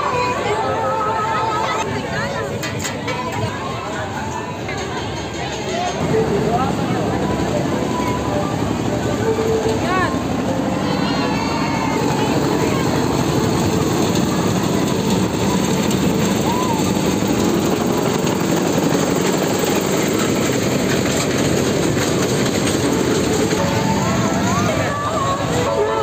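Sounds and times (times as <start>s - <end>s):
music: 0.0s - 1.9s, 6.0s - 17.1s, 22.7s - 26.0s
voices: 0.0s - 26.0s
toy train rumbling on track: 1.8s - 26.0s.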